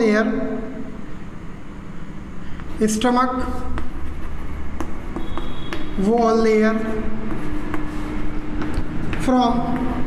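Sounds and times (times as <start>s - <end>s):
chalk tapping on blackboard: 3.6s - 10.0s.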